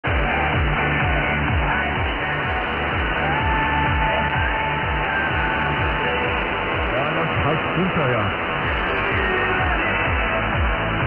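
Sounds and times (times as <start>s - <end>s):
music with steady beat on radio: 0.0s - 11.0s
shortwave static hiss: 0.0s - 11.0s.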